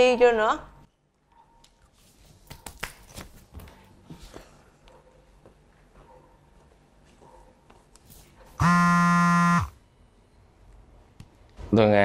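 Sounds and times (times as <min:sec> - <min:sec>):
mobile phone buzzing: 0:08.6 - 0:09.8.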